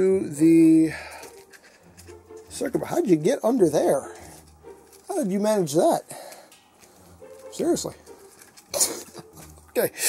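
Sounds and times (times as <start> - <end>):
wire handling noises: 0.9 - 9.9.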